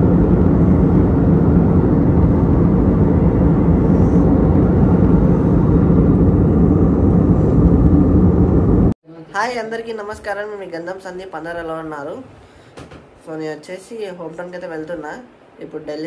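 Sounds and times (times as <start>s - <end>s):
jet engines droning: 0.0s - 9.0s
rushing airflow: 0.0s - 9.0s
steady cabin hum: 0.0s - 9.0s.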